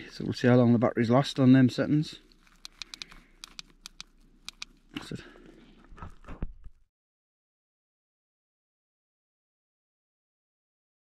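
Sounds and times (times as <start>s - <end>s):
sharp handling clicks: 2.3s - 4.8s.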